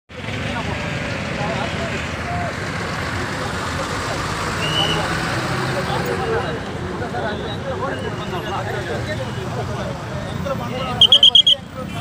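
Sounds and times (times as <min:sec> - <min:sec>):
crowd talking: 0:00.1 - 0:12.0
traffic noise: 0:00.1 - 0:12.0.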